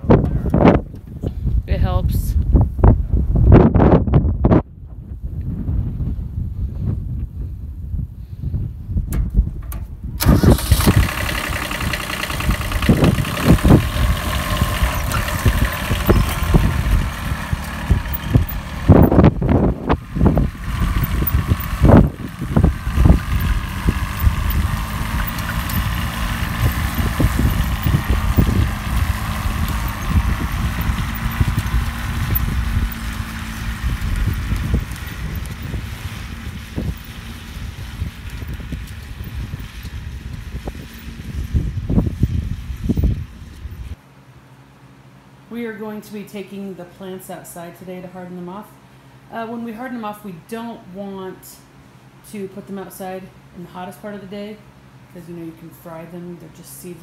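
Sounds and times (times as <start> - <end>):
tractor engine running: 9.1 - 44.0.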